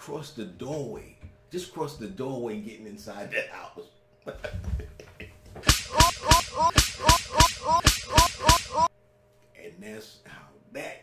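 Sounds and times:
whip cracks: 5.6 - 8.9.

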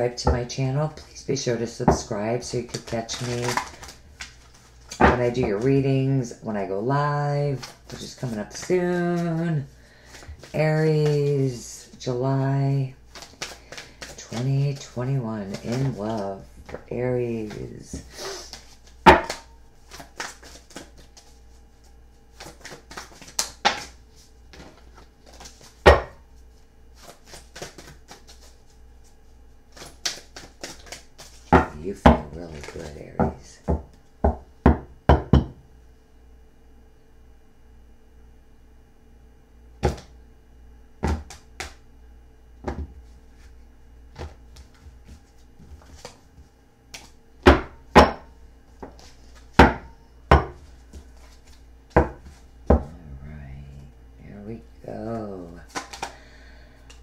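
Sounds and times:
low steady room hum: 0.0 - 57.0
cards tapping and clicking on table: 13.1 - 14.9, 22.4 - 23.9, 29.7 - 35.5, 55.7 - 56.2.

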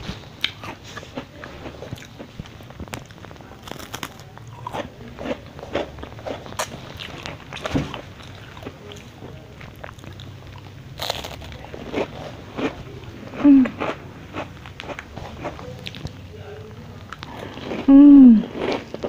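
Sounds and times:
crunching crispy wafer: 0.4 - 16.1.

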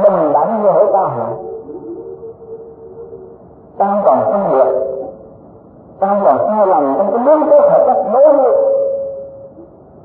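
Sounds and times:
man holding a long sung note: 0.0 - 5.2.

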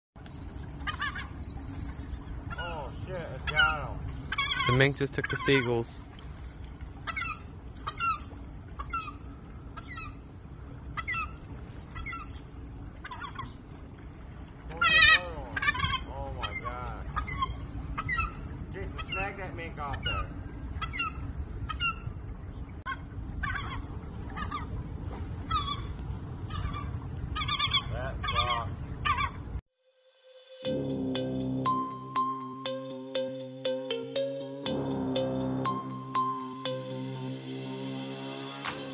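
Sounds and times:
gulls calling: 0.2 - 29.6, 31.6 - 38.9
sustained synth notes: 29.9 - 38.9
steady electronic beat: 30.7 - 38.9.

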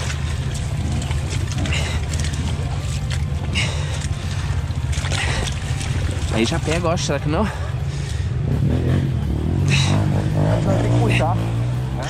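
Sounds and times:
mud spattering: 0.0 - 8.2
dirt bike engine running: 0.0 - 12.0.

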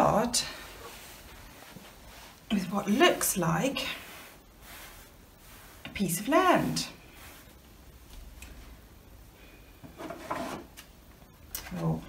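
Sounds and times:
hands rustling coarse cloth: 0.0 - 9.0.

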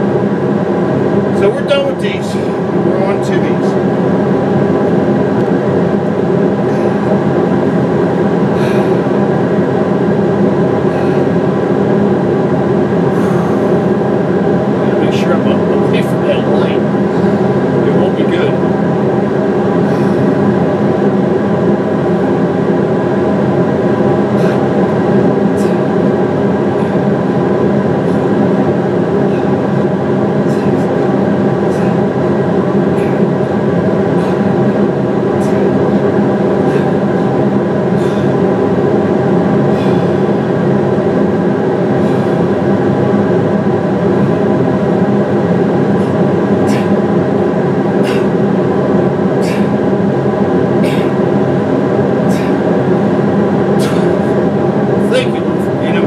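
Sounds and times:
industrial fans whirring: 0.0 - 56.0.

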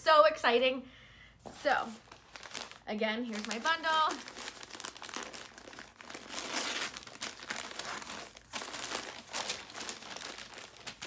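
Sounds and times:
plastic wrapping crinkling: 1.7 - 11.0.

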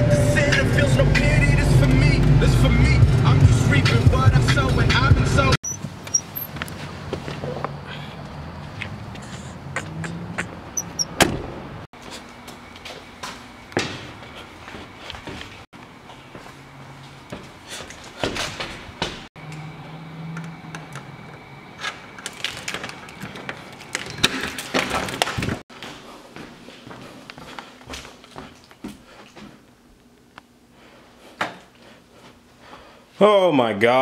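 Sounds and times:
keys jingling: 5.6 - 6.6
door opening: 5.6 - 6.8, 10.6 - 11.6
footsteps: 5.8 - 10.6, 12.0 - 19.3, 21.8 - 29.8.

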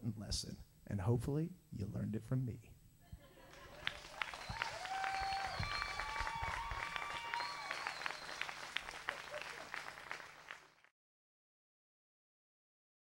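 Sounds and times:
audience clapping: 3.4 - 10.9
cheering: 3.5 - 10.6.

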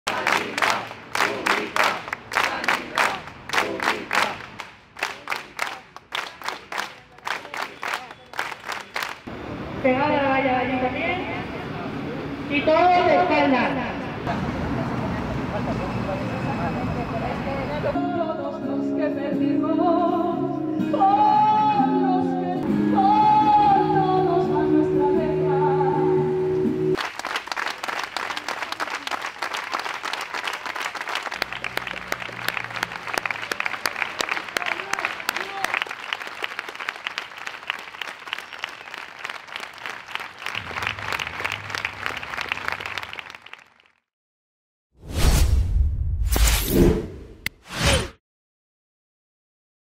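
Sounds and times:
crowd applauding: 0.0 - 9.3, 27.0 - 44.1
person singing: 18.0 - 26.3.

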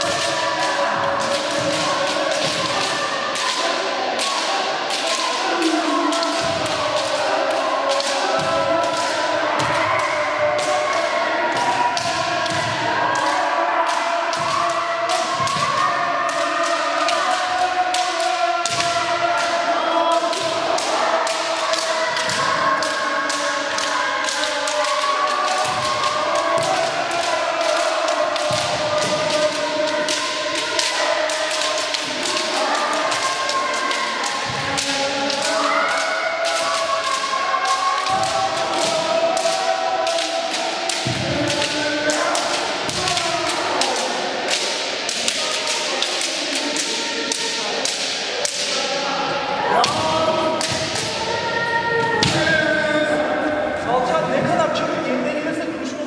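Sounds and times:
bamboo swords clacking: 0.0 - 19.5, 20.2 - 48.8, 49.8 - 51.2
people shouting: 0.0 - 56.0.

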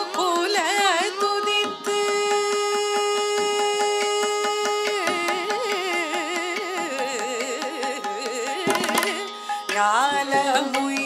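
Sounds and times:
violin: 0.0 - 11.0
woman singing: 0.0 - 11.0
hand drum strokes: 8.7 - 9.2.

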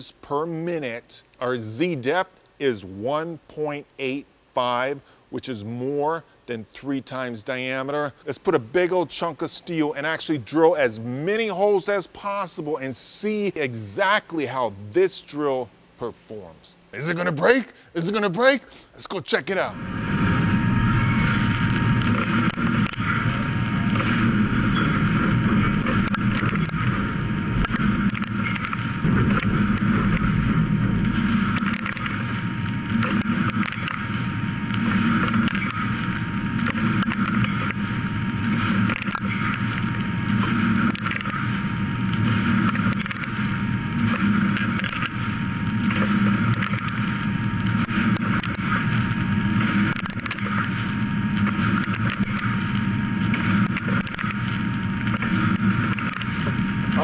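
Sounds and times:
machine drilling steel: 19.9 - 57.0.

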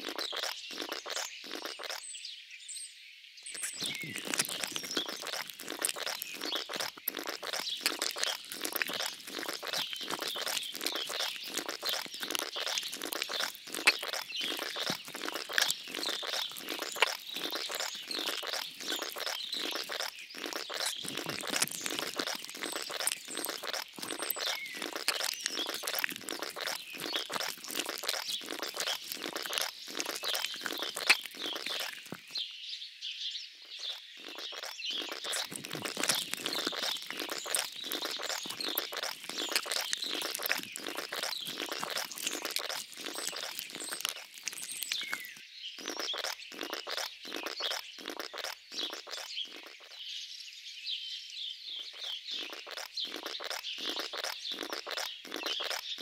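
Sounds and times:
birds chirping: 0.0 - 2.8, 3.4 - 56.0.

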